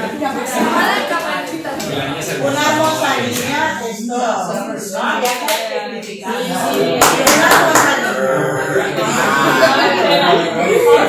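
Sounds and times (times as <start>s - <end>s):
speech: 0.0s - 11.0s
hand claps: 5.2s - 5.7s, 7.0s - 8.0s.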